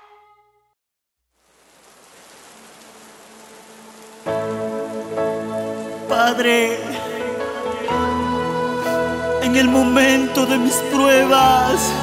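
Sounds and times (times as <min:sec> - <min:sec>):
rain: 0:01.2 - 0:12.0.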